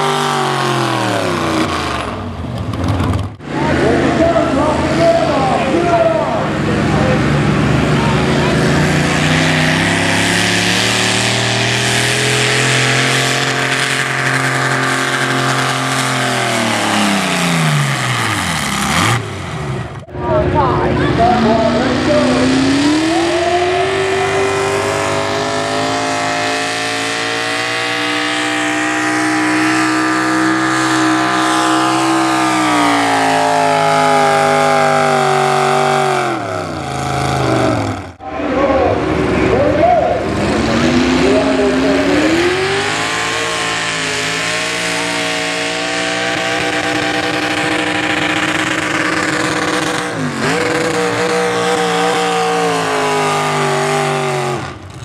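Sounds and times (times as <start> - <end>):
truck engine at full throttle: 0.0 - 55.0.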